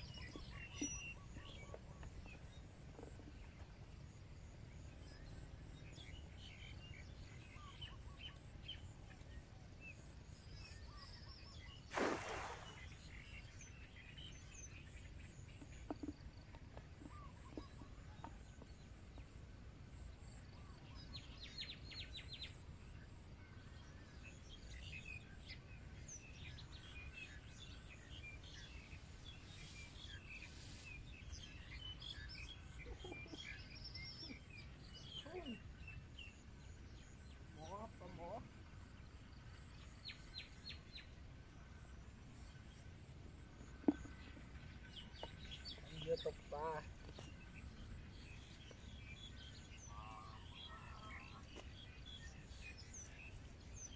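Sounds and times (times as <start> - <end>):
birds chirping: 23.7 - 53.9.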